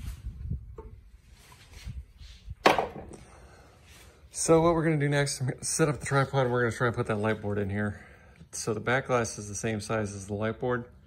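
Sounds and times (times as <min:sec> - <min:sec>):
sharp wooden knock: 0:02.6 - 0:03.2.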